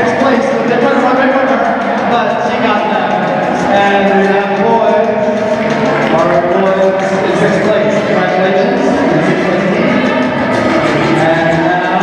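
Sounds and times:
song over loudspeakers: 0:00.0 - 0:12.0.

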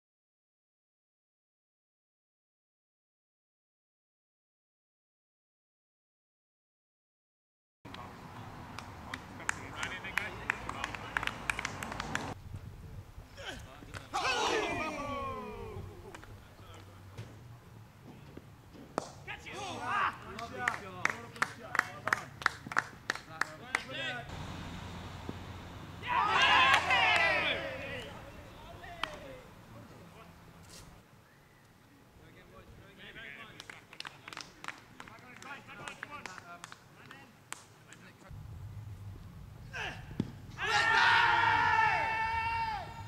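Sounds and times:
people clapping: 0:08.7 - 0:12.4, 0:20.2 - 0:24.1, 0:26.3 - 0:28.2, 0:28.8 - 0:29.3, 0:33.4 - 0:38.1
excited shouting: 0:13.4 - 0:16.1, 0:19.3 - 0:20.6, 0:26.0 - 0:29.4, 0:39.7 - 0:43.0.

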